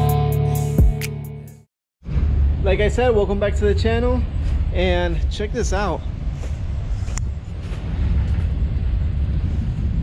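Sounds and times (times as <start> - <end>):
wind on microphone: 5.6 - 10.0.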